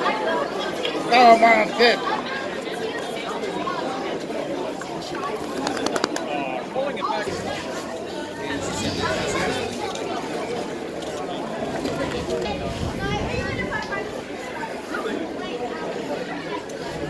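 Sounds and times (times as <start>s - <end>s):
indistinct chatter and calls: 0.0s - 17.0s.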